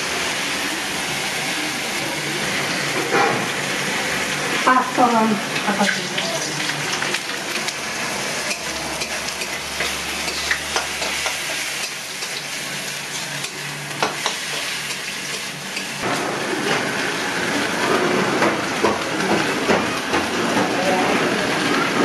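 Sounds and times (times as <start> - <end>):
oil sizzling: 0.0 - 22.0.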